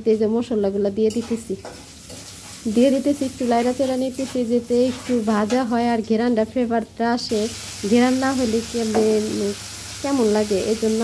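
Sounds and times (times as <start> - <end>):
woman talking: 0.0 - 1.7, 2.7 - 11.0
onions sizzling in oil: 1.2 - 5.8, 7.3 - 11.0.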